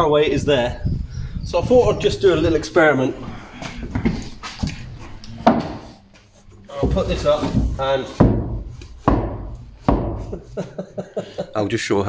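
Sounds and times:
timber knocking on wood: 6.8 - 10.5.

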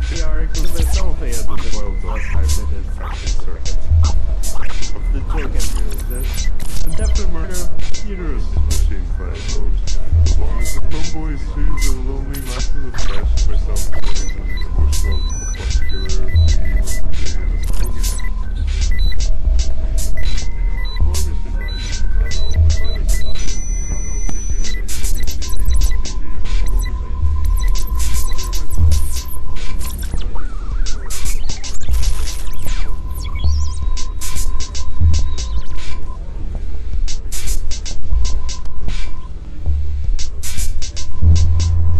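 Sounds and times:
noisy percussion hits: 0.0 - 36.1, 36.9 - 41.9
high electronic beeps: 0.0 - 36.3, 36.9 - 41.9
electronic music: 0.0 - 41.9
rumbling bass: 0.0 - 41.9
steady high tone: 0.0 - 41.9.

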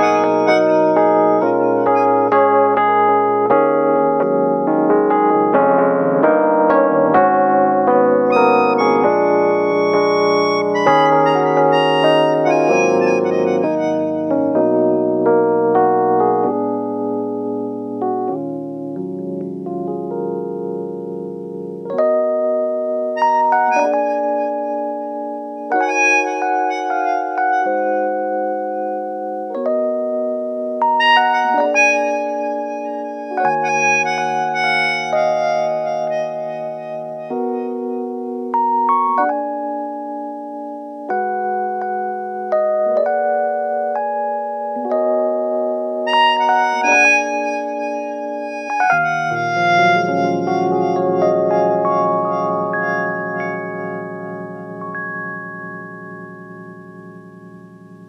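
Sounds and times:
electric piano: 0.0 - 58.0
melodion chords: 0.0 - 58.0.

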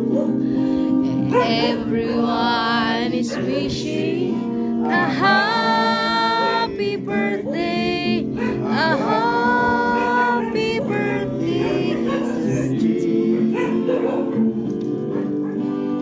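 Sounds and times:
men singing together: 1.0 - 15.4.

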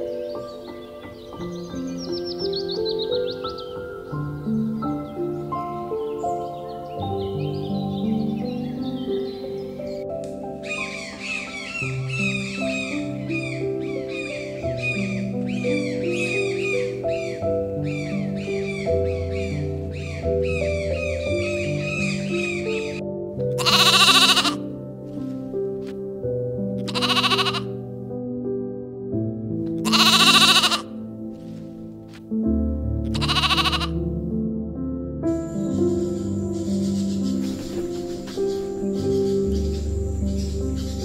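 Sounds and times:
soft background music: 0.0 - 41.0
goat bleating: 23.6 - 24.6, 26.8 - 27.7, 29.8 - 30.9, 33.1 - 34.0.

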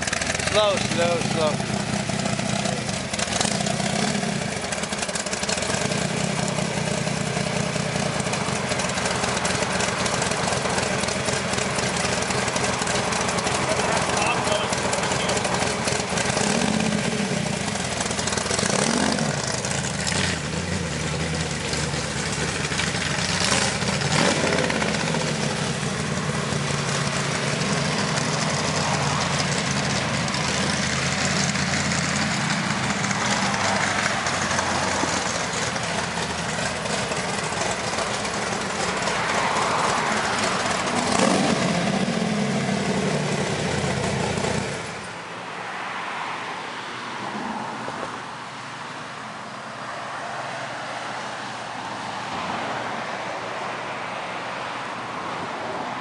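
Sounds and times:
car engine running at low speed: 0.0 - 45.4.

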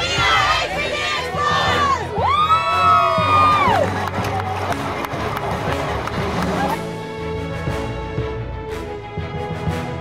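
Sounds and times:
teenagers cheering and shouting: 0.0 - 5.7.

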